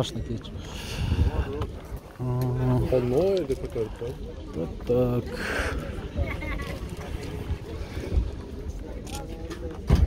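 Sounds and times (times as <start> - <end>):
background chatter of people: 0.0 - 10.0
wind rumbling on microphone: 0.8 - 2.2, 6.1 - 8.5.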